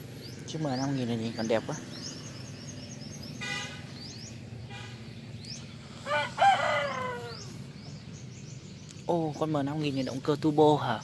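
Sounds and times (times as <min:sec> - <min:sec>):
small birds chirping: 0:00.0 - 0:11.0
rooster crowing: 0:06.0 - 0:07.6.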